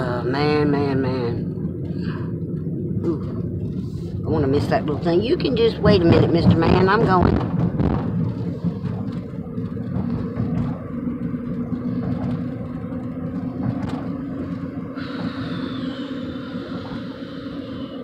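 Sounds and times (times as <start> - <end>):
road and engine noise in car: 0.0 - 18.0
faint high whine falling in pitch: 14.9 - 18.0.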